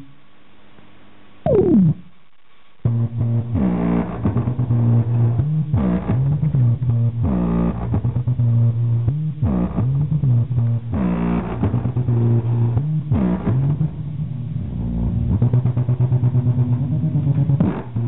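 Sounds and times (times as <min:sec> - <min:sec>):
bass-heavy music from speaker: 0:02.9 - 0:18.0.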